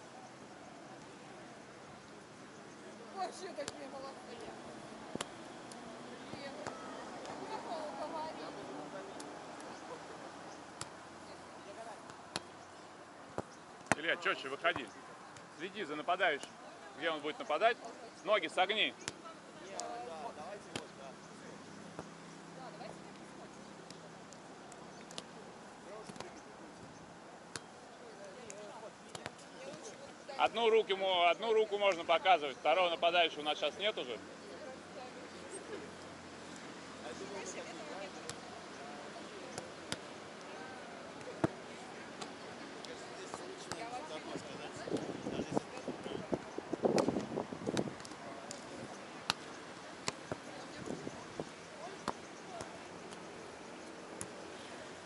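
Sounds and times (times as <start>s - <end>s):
faint distant voices: 0.0s - 55.0s
hands slapping a volleyball: 26.0s - 26.4s, 46.9s - 48.6s, 49.2s - 50.4s.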